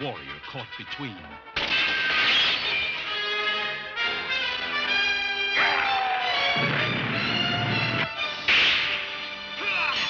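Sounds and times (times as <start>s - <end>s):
orchestral trailer music: 0.0s - 2.1s, 3.0s - 10.0s.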